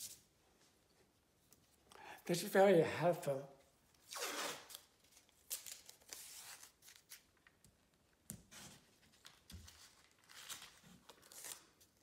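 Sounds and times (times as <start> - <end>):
tape ripping off roll: 4.0 - 4.9.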